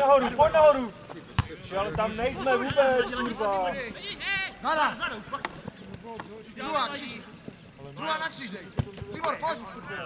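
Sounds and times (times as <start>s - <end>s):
footballers shouting: 0.0s - 10.0s.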